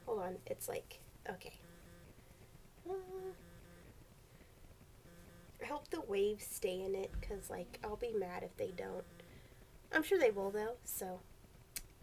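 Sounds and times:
faint steady hum: 0.0s - 12.0s
woman humming: 2.8s - 3.9s, 6.8s - 9.4s.

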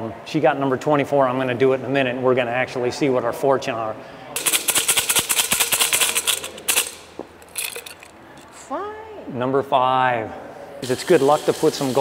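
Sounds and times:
fortune sticks rattling in cup: 4.4s - 8.6s.

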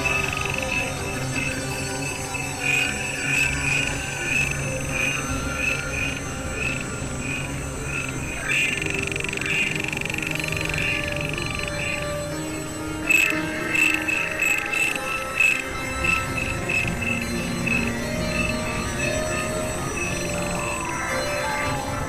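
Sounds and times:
high pulsing electronic tone: 0.0s - 22.0s
low steady drone: 0.0s - 22.0s.

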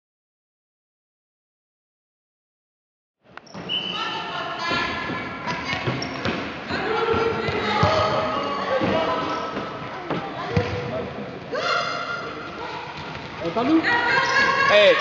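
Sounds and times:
basketball bouncing on court: 4.7s - 10.9s.

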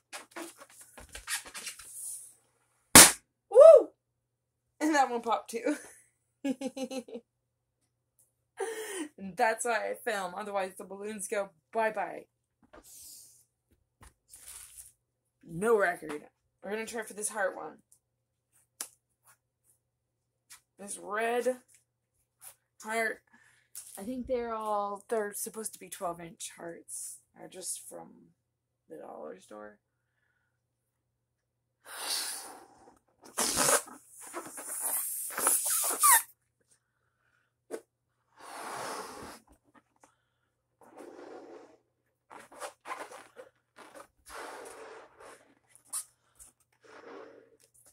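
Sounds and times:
balloon clicks and rubbery rustles: 0.0s - 2.0s, 33.2s - 36.3s
breaths blown into balloon: 31.8s - 36.3s, 38.4s - 39.6s, 44.2s - 46.2s, 46.8s - 47.6s.

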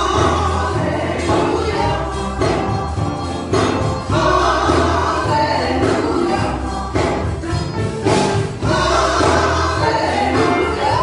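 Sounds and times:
instrumental accompaniment with bass: 0.0s - 11.0s
woman and man singing gospel: 0.0s - 11.0s.

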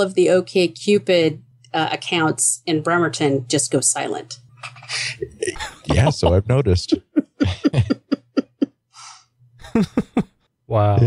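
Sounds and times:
person laughing: 4.6s - 10.3s.

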